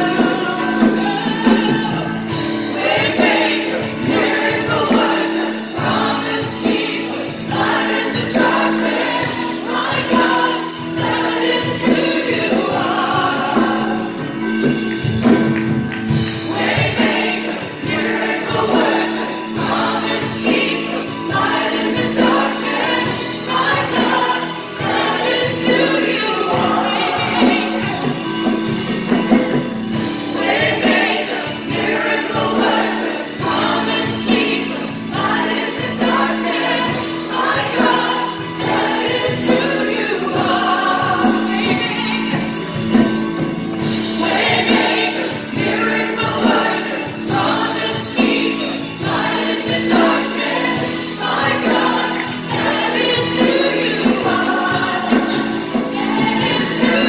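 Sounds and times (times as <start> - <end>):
woman singing lead: 0.0 - 15.4, 37.1 - 43.2
backing vocalists singing: 0.0 - 57.0
band accompaniment: 0.0 - 57.0.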